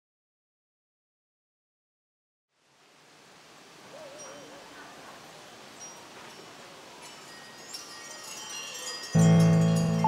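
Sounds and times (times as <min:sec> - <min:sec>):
soft airy hiss: 0:02.5 - 0:09.6
chimes tinkling: 0:05.7 - 0:10.0.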